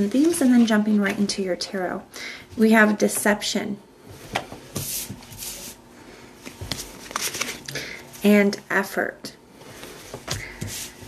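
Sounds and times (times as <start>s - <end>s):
cards rustling: 6.4s - 7.7s.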